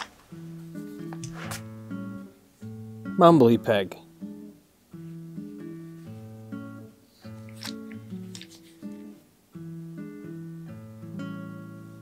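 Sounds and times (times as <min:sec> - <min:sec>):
acoustic guitar plucked chords: 0:00.3 - 0:08.2, 0:08.8 - 0:12.0.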